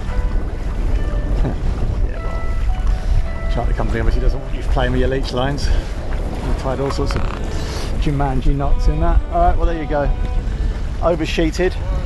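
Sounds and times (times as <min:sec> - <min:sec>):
background music: 0:00.0 - 0:12.0
water rushing along hull: 0:00.0 - 0:12.0
wind buffeting microphone: 0:00.0 - 0:12.0.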